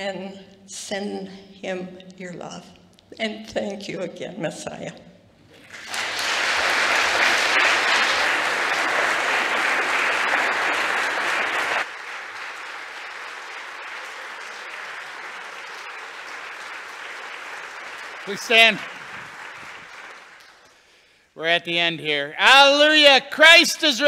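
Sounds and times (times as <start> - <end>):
congregation applauding: 5.5 - 21.2.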